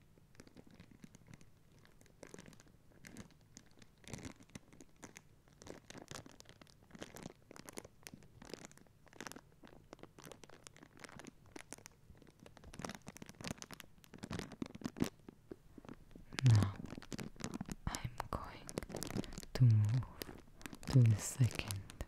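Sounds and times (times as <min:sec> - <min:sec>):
plastic bag crinkling: 0:04.5 - 0:22.0.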